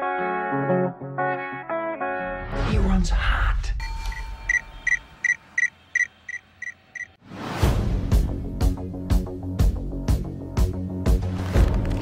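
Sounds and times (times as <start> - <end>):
short high electronic beeps: 4.1 - 7.2.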